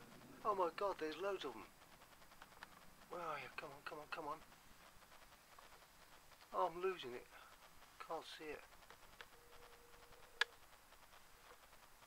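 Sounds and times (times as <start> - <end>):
faint steady tone: 0.0 - 12.0
faint ticks: 0.0 - 12.0.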